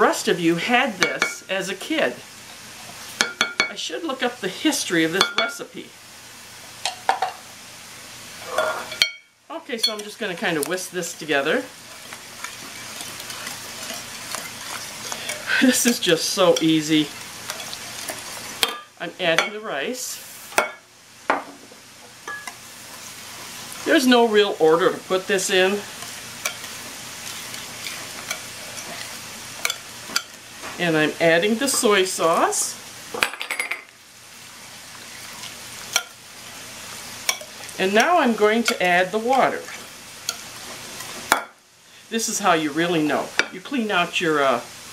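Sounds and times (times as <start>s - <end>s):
meat and onion sizzling in pan: 0.0s - 44.9s
kitchenware clinking on dish: 5.2s - 5.6s, 6.8s - 7.4s, 8.5s - 10.1s, 22.3s - 22.6s, 33.2s - 33.9s
whisk stirring thick soup: 9.9s - 18.5s, 25.5s - 30.3s, 35.0s - 36.1s.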